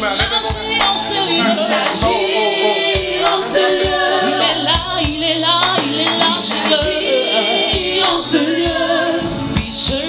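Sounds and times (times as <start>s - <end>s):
steady beat: 0.0s - 10.0s
women and choir singing gospel: 0.0s - 10.0s.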